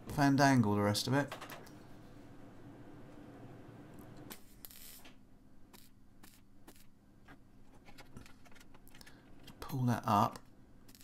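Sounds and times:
welder arc crackle: 4.3 - 5.1.

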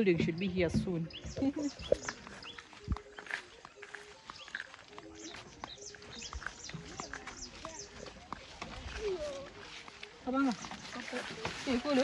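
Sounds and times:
birds chirping: 0.0 - 12.0
footsteps through tall grass: 0.9 - 12.0.

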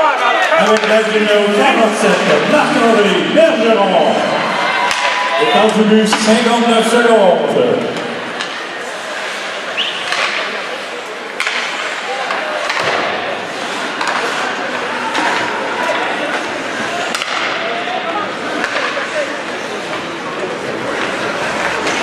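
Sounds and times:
murmur of voices: 0.0 - 22.0
skates scraping on ice: 8.3 - 17.4, 18.2 - 22.0.

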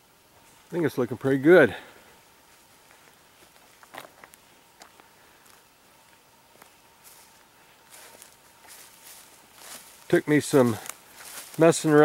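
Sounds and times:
footsteps on soil and debris: 2.4 - 12.0.

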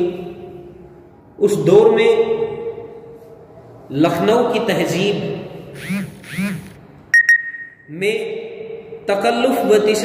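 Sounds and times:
faint steady high tone: 7.1 - 8.0.

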